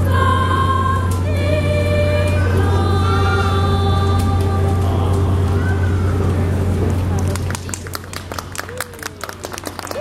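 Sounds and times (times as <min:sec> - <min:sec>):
choir holding final chord: 0:00.0 - 0:05.3
voices calling out: 0:00.0 - 0:09.2
steady low hum: 0:00.0 - 0:10.0
scattered hand clapping: 0:06.7 - 0:10.0.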